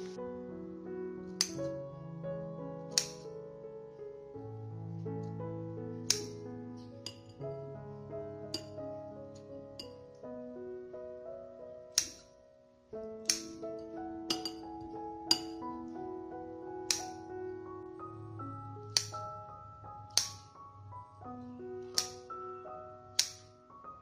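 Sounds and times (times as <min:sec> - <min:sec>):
soft background music: 0:00.0 - 0:24.0
scissors snipping metallic clicks: 0:02.9 - 0:03.2, 0:06.1 - 0:06.4, 0:11.9 - 0:12.3, 0:13.2 - 0:13.6, 0:20.1 - 0:20.4, 0:23.2 - 0:23.5.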